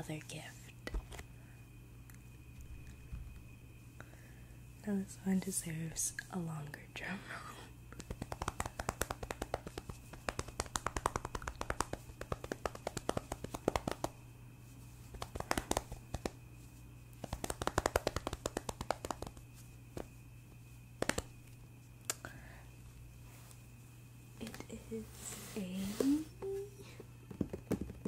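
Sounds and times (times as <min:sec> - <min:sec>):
hands drumming taps on surface: 0:08.0 - 0:14.2, 0:17.2 - 0:19.4.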